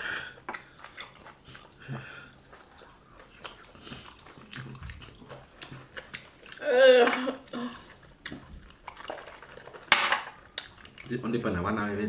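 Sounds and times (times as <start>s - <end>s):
people chewing: 0.0s - 11.5s.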